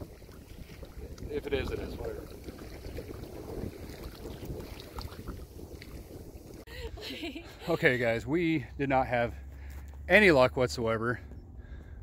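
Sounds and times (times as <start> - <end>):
wind buffeting microphone: 0.0 - 7.1
water lapping at shore: 0.0 - 7.7.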